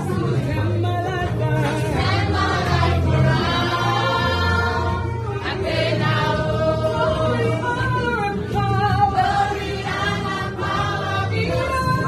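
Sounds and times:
group singing in chorus: 0.0 - 12.0.

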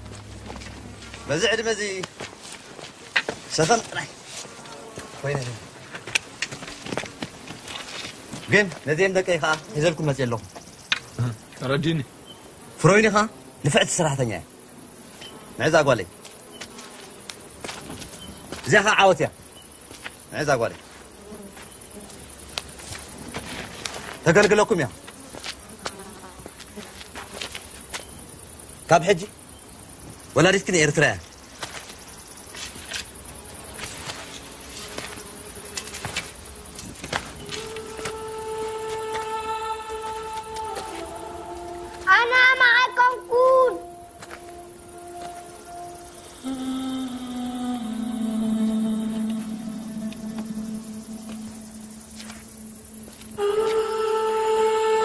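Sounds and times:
music drone: 0.0 - 1.9, 37.4 - 55.0
insects buzzing: 0.0 - 55.0
child shouting: 42.0 - 44.0.

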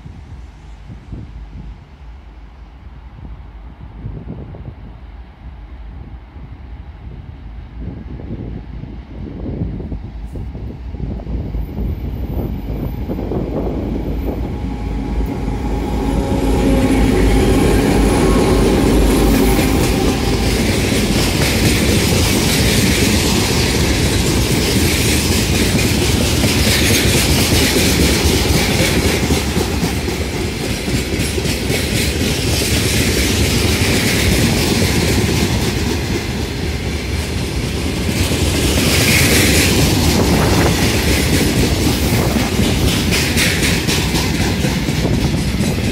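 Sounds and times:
diesel locomotive engines running: 0.0 - 45.9
train wheels clattering on rails: 11.6 - 45.9.

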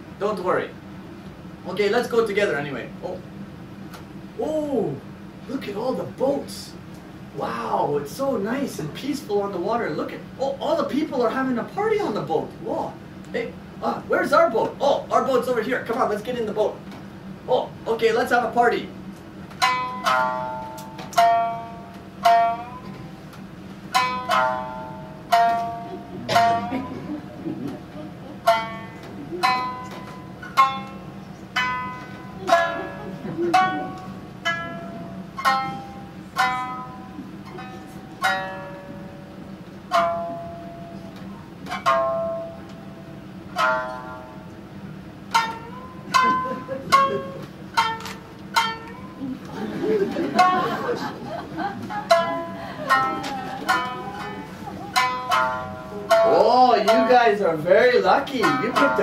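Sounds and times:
plucked string melody: 14.5 - 59.0.

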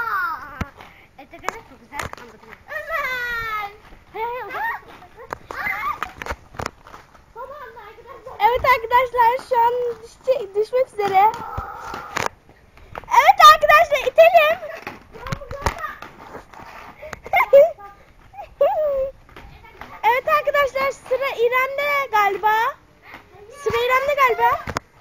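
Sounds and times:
children calling and chattering: 0.0 - 25.0.

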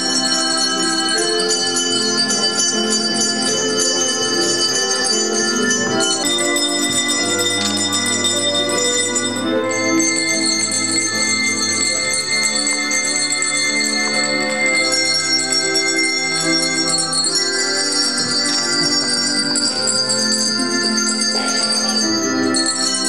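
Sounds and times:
handbells jangling: 0.0 - 23.0.

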